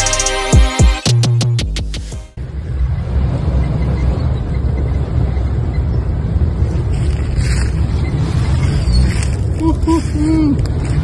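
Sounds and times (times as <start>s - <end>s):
background music: 0.0s - 2.4s
suv engine low rumble: 2.4s - 11.0s.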